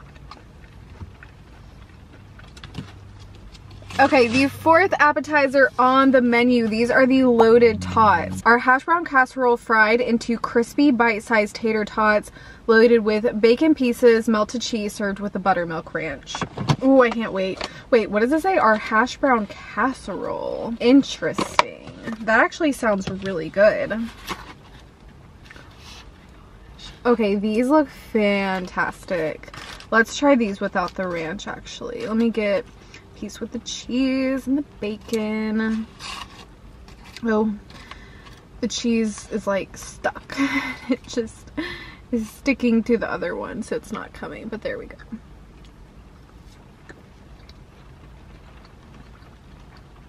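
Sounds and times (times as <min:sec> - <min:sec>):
car cabin hum: 0:06.3 - 0:08.7
paper and plastic rustling: 0:23.9 - 0:26.2, 0:28.5 - 0:31.2, 0:35.6 - 0:39.4.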